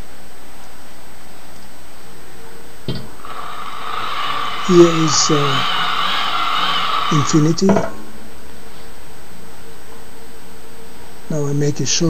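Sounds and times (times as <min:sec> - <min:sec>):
hand-cranked dynamo whine: 0:03.1 - 0:08.0.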